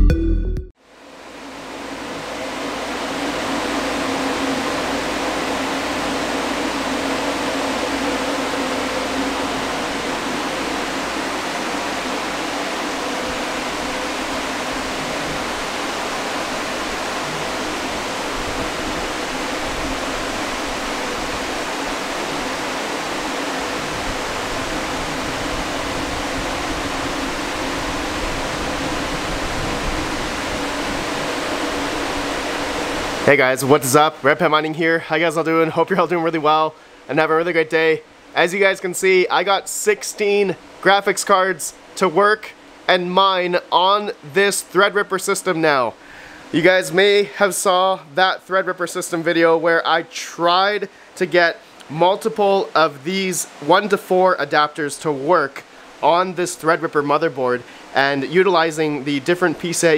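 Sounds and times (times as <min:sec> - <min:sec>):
cooling fans whooshing: 0:00.8 - 0:59.9
faint steady hum: 0:00.8 - 0:59.9.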